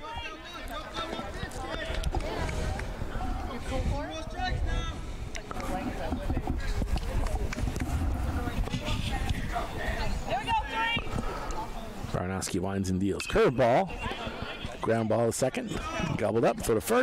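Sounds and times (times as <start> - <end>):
steady low rumble: 6.7 - 10.2.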